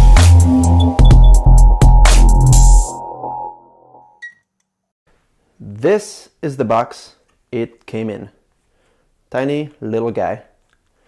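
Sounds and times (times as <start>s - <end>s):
electronic intro music: 0.0s - 4.2s
short high beep: 4.2s - 4.4s
man speaking: 5.6s - 8.4s.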